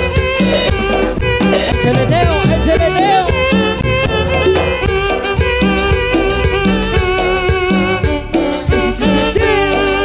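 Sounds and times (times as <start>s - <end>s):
live dance band playing: 0.0s - 10.0s.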